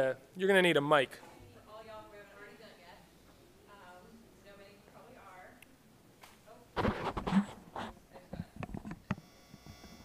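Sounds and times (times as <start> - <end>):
microphone handling bumps: 6.8 - 9.1
electrical buzz from sound system: 8.6 - 10.0.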